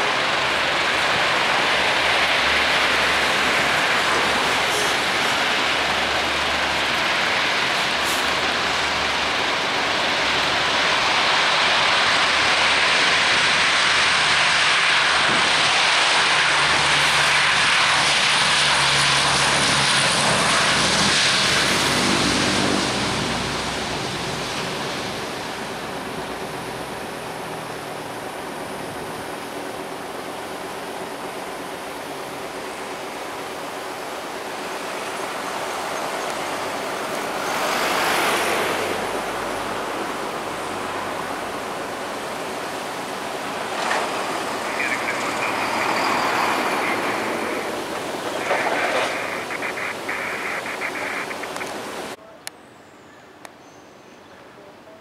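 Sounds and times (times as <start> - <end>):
loud rushing noise: 0.0 - 52.2
low propeller drone: 0.0 - 52.2
turboprop engines at takeoff power: 0.0 - 52.2.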